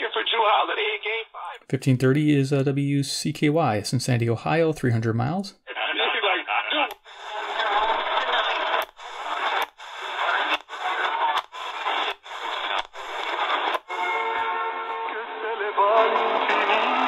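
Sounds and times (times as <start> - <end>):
talk radio speech: 0.0 - 1.6, 5.7 - 13.8
noisy weak radio signal: 5.7 - 14.5
radio tuning clicks: 6.8 - 14.2.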